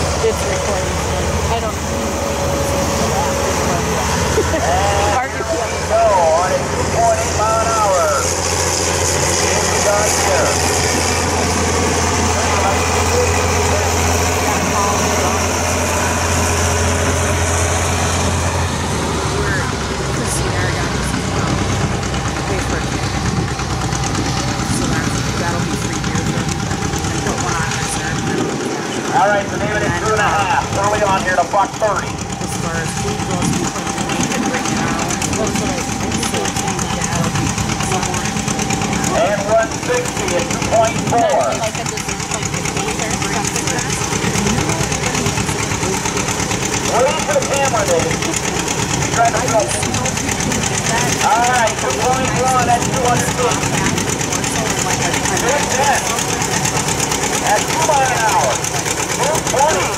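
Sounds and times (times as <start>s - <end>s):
tractor engine droning: 0.0s - 59.9s
voices: 0.0s - 59.9s.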